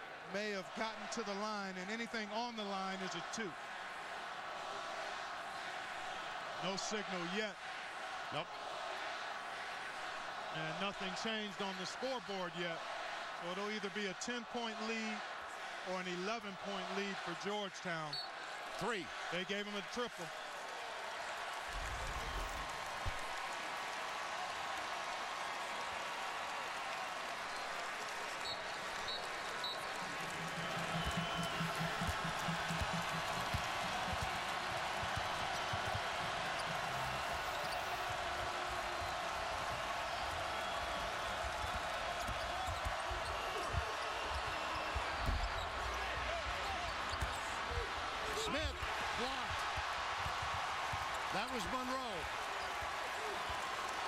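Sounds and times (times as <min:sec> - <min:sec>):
arena crowd noise: 0:00.0 - 0:54.0.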